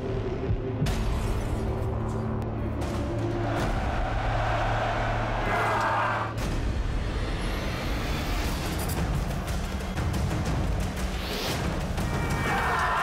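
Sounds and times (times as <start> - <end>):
dense soundtrack music: 0.0 - 13.0.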